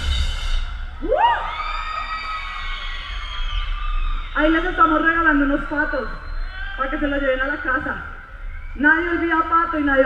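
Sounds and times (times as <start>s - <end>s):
person whooping: 1.0s - 2.2s.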